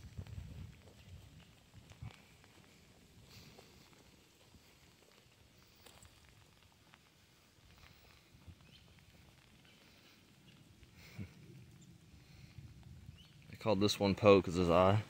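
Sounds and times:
faint ticks and crackles: 0.0 - 15.0.

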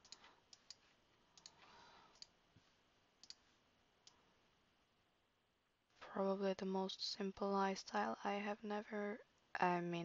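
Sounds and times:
computer mouse clicks: 0.0 - 0.8, 1.4 - 2.4, 3.2 - 3.4.

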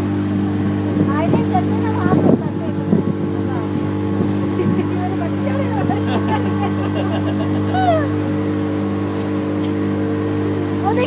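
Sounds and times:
motorboat engine running: 0.0 - 11.0
wake washing: 0.0 - 11.0
person calling out: 7.7 - 8.2.

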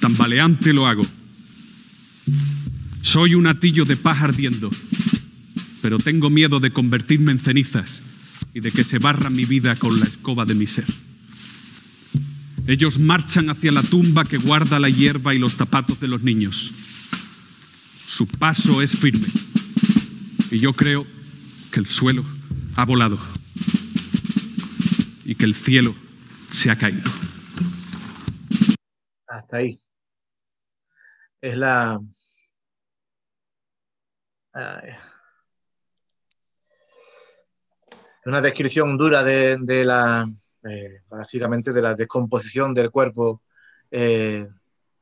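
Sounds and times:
person speaking: 0.0 - 1.2, 2.9 - 4.8, 5.8 - 11.1, 12.6 - 16.9, 17.8 - 19.5, 20.4 - 27.5
rapid drum roll strokes: 0.0 - 28.8
held low musical note: 2.3 - 3.9, 12.2 - 15.1, 20.5 - 24.2.

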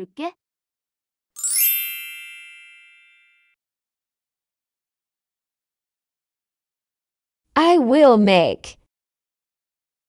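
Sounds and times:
bright chime sound effect: 1.4 - 3.6.

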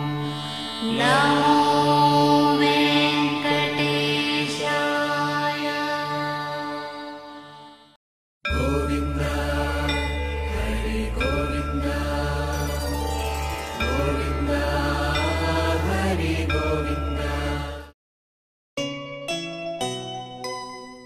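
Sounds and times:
chanted mantra singing: 0.3 - 7.8, 8.5 - 17.9
steady low drone: 8.5 - 17.8.

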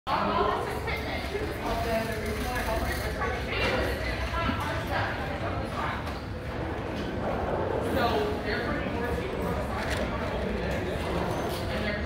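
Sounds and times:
indistinct chatter: 0.1 - 12.0.

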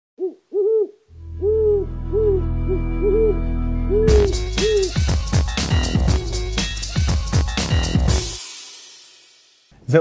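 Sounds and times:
cartoon owl hooting: 0.2 - 5.1
steady low drone: 1.1 - 5.0.

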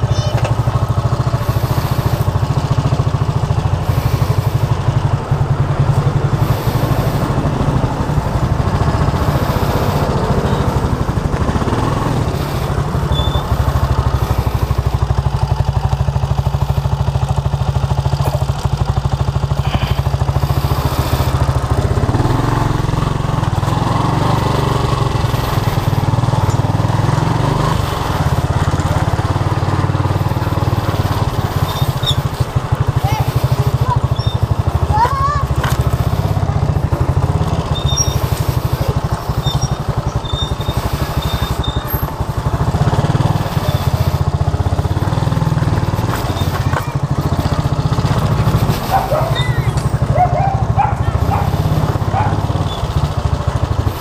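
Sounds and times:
small motorcycle engine running: 0.0 - 54.0.

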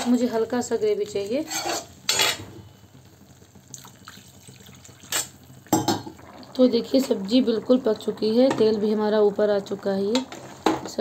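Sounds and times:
curry bubbling in a pan: 0.0 - 11.0.

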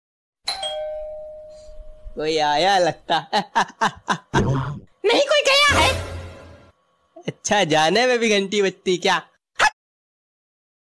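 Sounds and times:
doorbell chime: 0.5 - 2.2.

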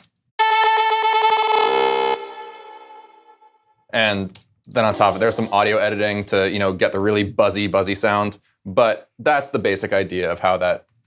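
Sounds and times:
buzzy stuttering vocal tone: 4.8 - 6.3.

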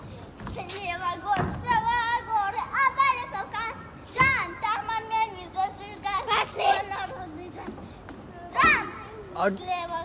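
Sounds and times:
girl chanting a rhyme: 0.4 - 10.0.

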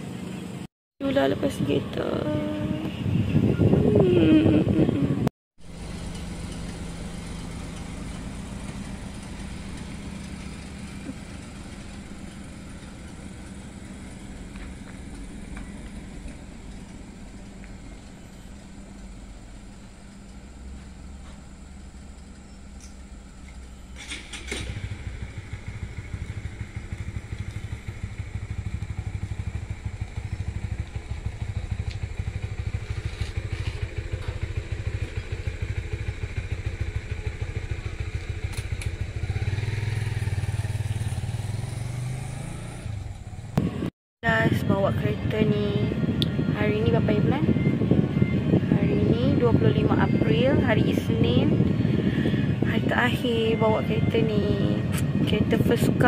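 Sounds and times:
motorcycle engine running: 0.0 - 56.0
car engine pulling away: 5.6 - 43.9.

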